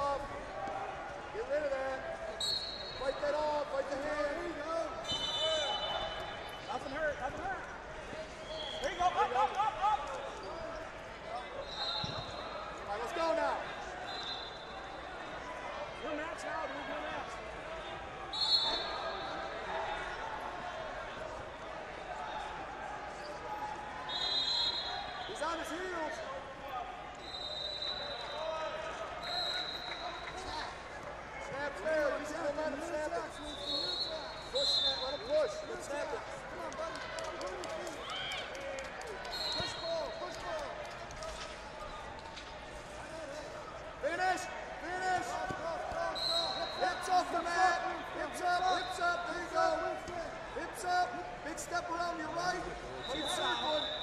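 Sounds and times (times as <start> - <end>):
hubbub of voices and shouts: 0.0 - 54.0
referee whistle blasts: 2.4 - 3.2, 5.0 - 6.9, 8.4 - 9.0, 11.6 - 12.6, 14.0 - 14.9, 18.3 - 19.5, 24.1 - 25.7, 27.2 - 28.6, 29.2 - 30.5, 33.3 - 35.7, 39.3 - 40.2, 46.0 - 49.2, 53.0 - 54.0.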